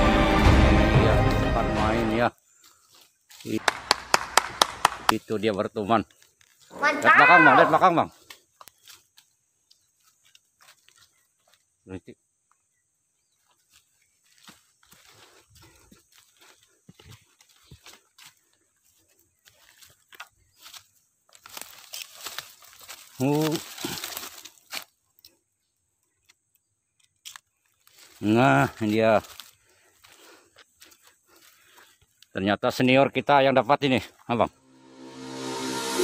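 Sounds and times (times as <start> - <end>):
footsteps crunching on dry leaves: 2.2 - 3.9, 5.3 - 11.8, 13.2 - 25.0, 27.6 - 32.2
sharp crack: 3.5 - 5.2.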